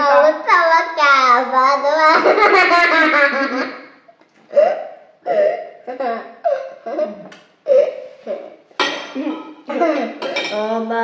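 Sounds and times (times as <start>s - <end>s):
child's voice: 0.0s - 2.3s
cutlery clinking against plates: 8.7s - 10.7s.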